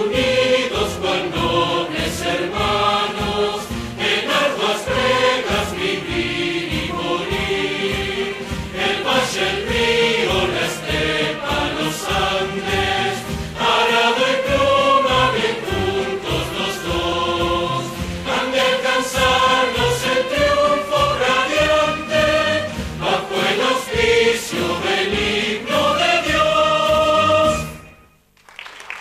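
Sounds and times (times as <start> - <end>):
crowd singing an anthem: 0.0 - 27.9
music: 0.0 - 29.0.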